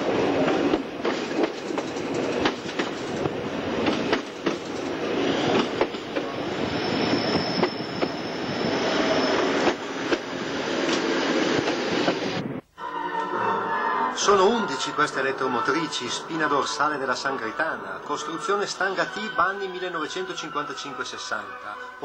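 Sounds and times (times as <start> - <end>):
train rumbling: 0.0 - 12.6
high wheel squeal: 6.4 - 9.7.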